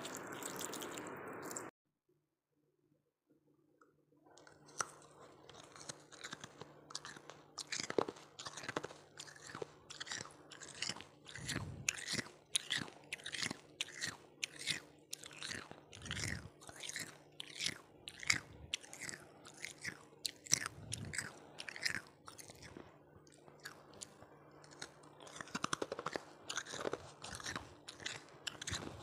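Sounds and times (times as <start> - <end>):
person crunching ice: 4.7 - 22.8, 23.6 - 29.0.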